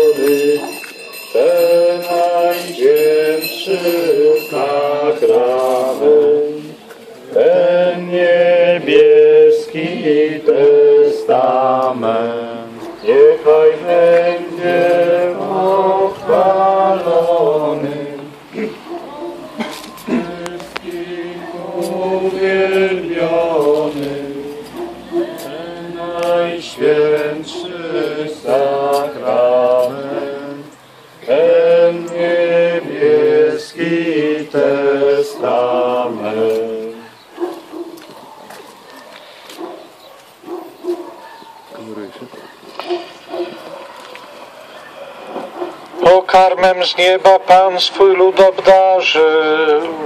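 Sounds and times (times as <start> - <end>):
voices singing a hymn in unison: 0.0 - 38.6, 42.8 - 50.0.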